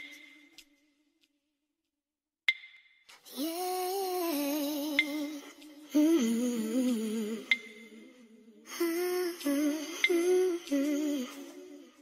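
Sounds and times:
person humming a tune: 3.3 - 12.0.

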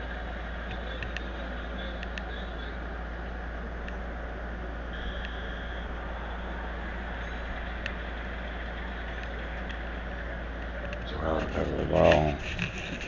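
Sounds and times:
low electrical hum: 0.0 - 13.0.

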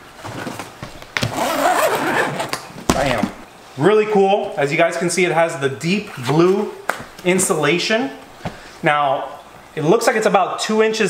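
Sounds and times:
zipper rasping open: 1.2 - 3.2.

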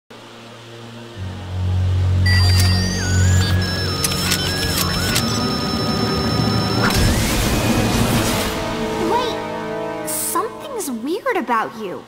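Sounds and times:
low music drone: 0.1 - 11.2
electronic whirring tones: 2.1 - 8.9.

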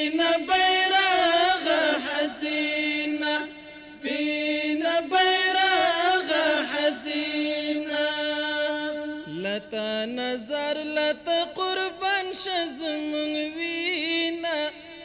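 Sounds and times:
men chanting in unison: 0.0 - 15.0.

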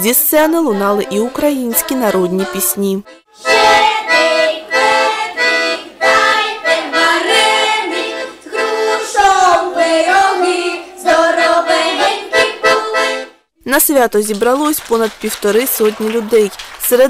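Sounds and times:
girls singing: 0.6 - 13.3
piano accordion playing folk song: 0.6 - 13.4.

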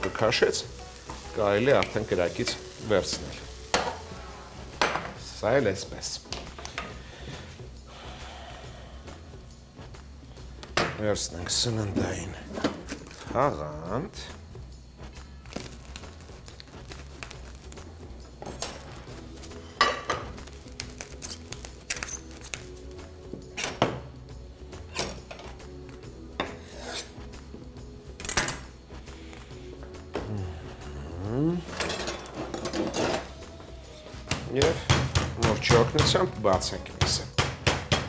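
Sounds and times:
background music: 0.0 - 38.0
cling film clicks and rustles: 15.4 - 17.8, 20.4 - 22.7.

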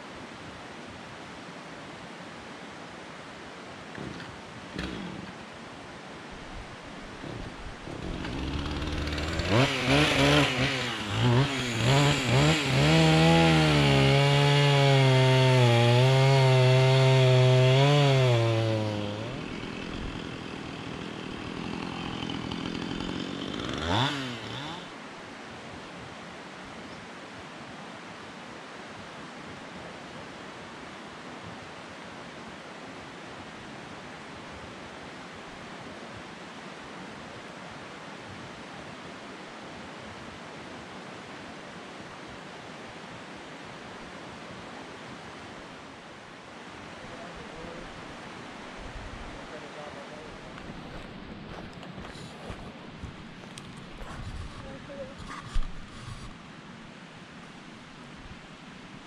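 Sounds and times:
steady outdoor hiss: 0.0 - 59.0
two-stroke chainsaw running: 4.8 - 5.3, 7.9 - 24.9.

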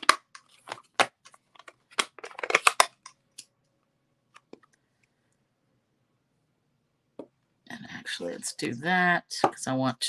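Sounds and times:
plastic case handling: 0.0 - 3.2.

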